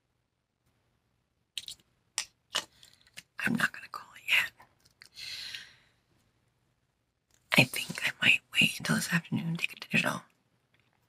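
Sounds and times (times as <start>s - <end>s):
woman speaking quietly: 7.5s - 10.3s.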